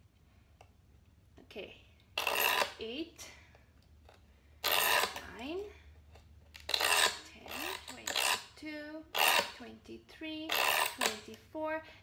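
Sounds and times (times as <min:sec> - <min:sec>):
scribe scratching glass: 0:02.2 - 0:02.8, 0:04.6 - 0:05.3, 0:06.6 - 0:09.6, 0:10.5 - 0:11.2.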